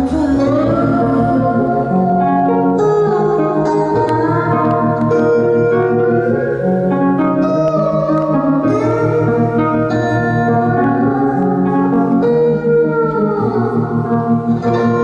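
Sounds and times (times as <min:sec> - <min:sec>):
gliding melody line: 0:00.0 - 0:15.0
keyboard chords: 0:00.0 - 0:15.0
plucked strings: 0:00.0 - 0:15.0.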